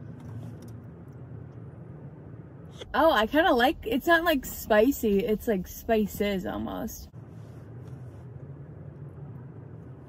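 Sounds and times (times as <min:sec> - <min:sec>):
low hum inside car cabin: 0:00.0 - 0:10.0.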